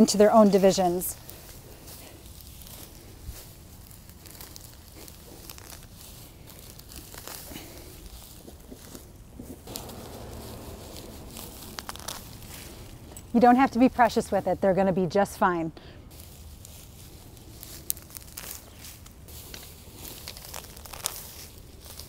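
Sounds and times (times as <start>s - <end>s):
small crackles: 0.0s - 14.2s, 16.1s - 22.0s
rustling of grassy foliage: 0.0s - 22.0s
soft tearing of roots: 1.2s - 13.4s, 16.1s - 22.0s
low rumble: 9.6s - 14.7s.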